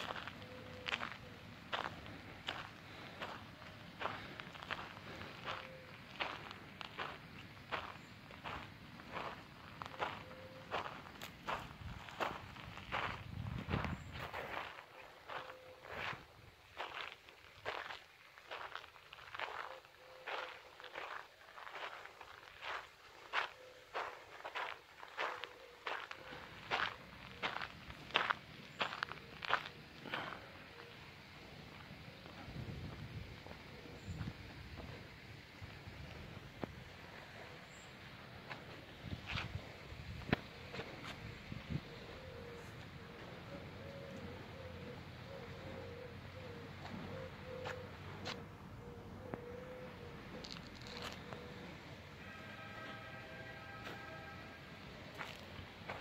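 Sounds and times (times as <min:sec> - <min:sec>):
footsteps walking: 0:00.0 - 0:31.0, 0:46.8 - 0:48.4, 0:50.3 - 0:51.5, 0:54.8 - 0:56.0.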